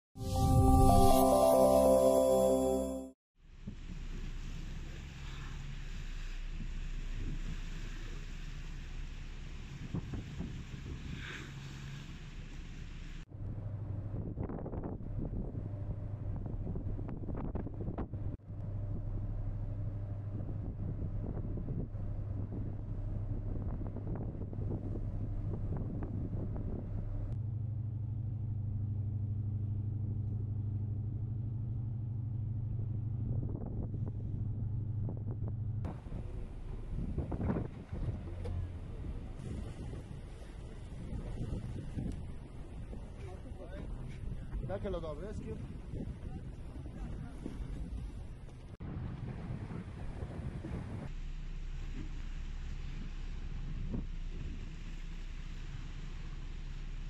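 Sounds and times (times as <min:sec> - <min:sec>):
boat engine running: 0:03.7 - 0:57.0
wind buffeting microphone: 0:09.5 - 0:11.4, 0:13.9 - 0:19.2, 0:20.3 - 0:27.4, 0:33.2 - 0:51.2, 0:51.9 - 0:56.0
water noise: 0:35.9 - 0:57.0.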